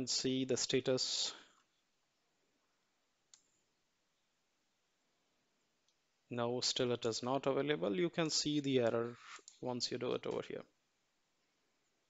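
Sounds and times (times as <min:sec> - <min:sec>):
computer mouse click: 0:03.3 - 0:03.6.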